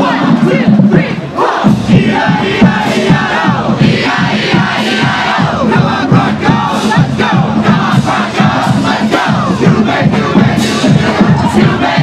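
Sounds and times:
steady drum beat: 0.0 - 12.0
voices shouting and chanting: 0.0 - 12.0.

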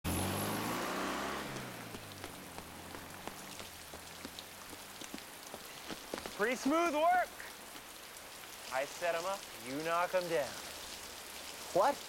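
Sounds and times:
heavy rain on hard surfaces: 0.1 - 12.0.

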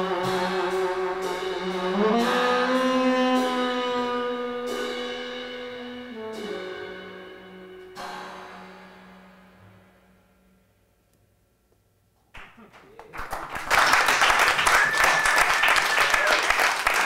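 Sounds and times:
tenor saxophone held notes: 0.0 - 8.4
trumpet long notes: 0.0 - 9.3.

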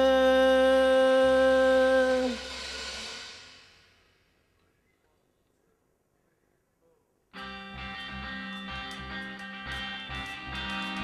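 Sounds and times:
ringing cymbal wash: 2.3 - 4.5
live rock band held note: 7.4 - 11.0.

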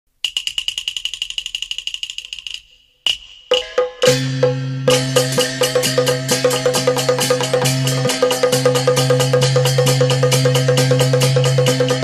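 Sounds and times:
high-pitched metal percussion strikes: 3.1 - 12.0.

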